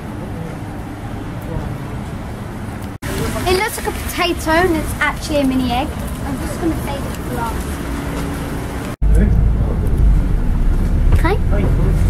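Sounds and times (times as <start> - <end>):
bus engine rumble: 0.0 - 12.0
street noise on wet road: 0.0 - 12.0.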